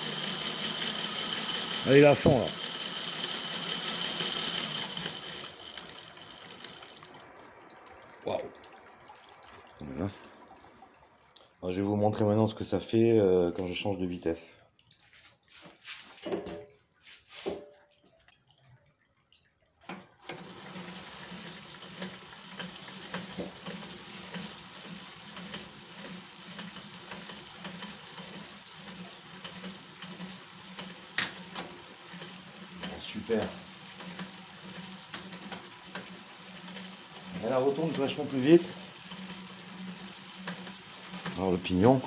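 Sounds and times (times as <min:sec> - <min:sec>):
motor whirring hum: 0:00.0 - 0:07.5.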